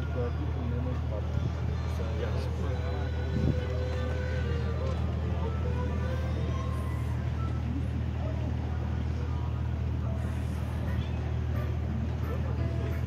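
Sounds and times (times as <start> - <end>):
faint voices: 0.0 - 13.0
ship engine droning: 0.0 - 13.0.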